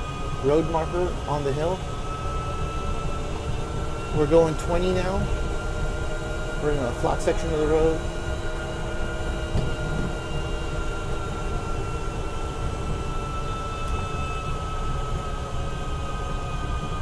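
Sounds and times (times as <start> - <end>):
electric car motor whining: 0.0 - 17.0.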